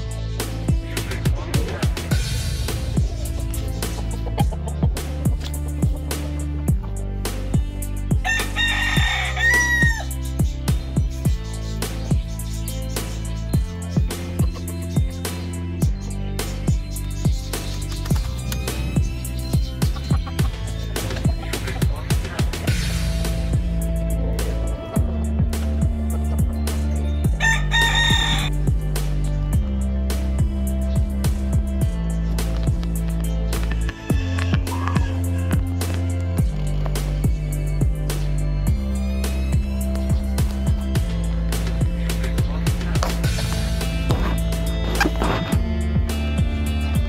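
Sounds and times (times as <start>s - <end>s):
music with drum beat: 0.0s - 47.0s
rooster crowing: 8.2s - 10.1s, 27.4s - 28.5s, 33.7s - 35.4s.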